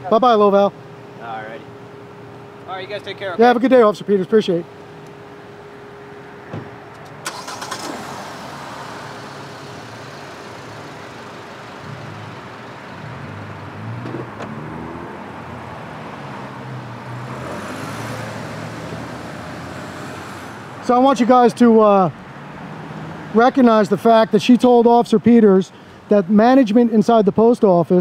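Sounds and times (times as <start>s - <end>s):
street noise: 0.0s - 28.0s
car engine running: 4.2s - 21.3s.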